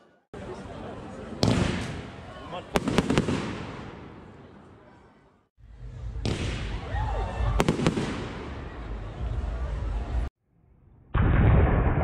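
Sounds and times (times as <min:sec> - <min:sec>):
firework bangs: 0:01.4 - 0:04.4, 0:06.2 - 0:08.7.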